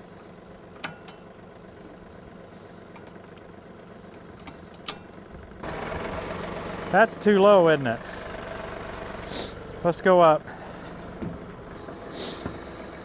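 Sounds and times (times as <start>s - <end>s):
tractor diesel engine idling: 0.0s - 13.0s.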